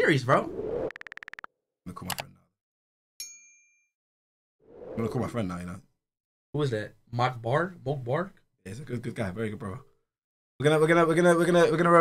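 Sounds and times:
bright bell ding: 3.2s - 3.9s.

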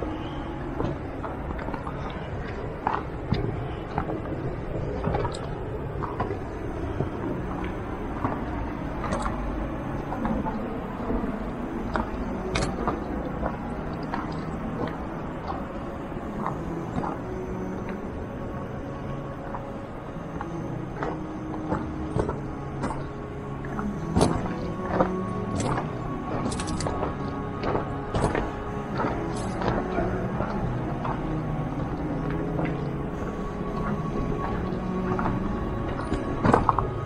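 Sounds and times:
low outdoor rumble: 0.0s - 37.0s.

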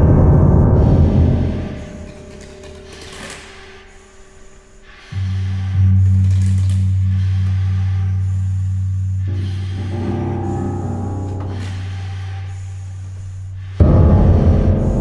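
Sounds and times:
loud struck ringing sound: 0.0s - 3.0s, 13.8s - 15.0s
low sustained note: 0.0s - 3.1s, 5.1s - 15.0s.

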